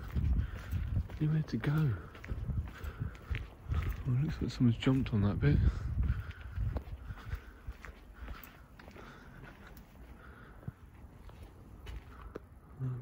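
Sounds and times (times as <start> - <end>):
faint footsteps: 0.0 - 12.8.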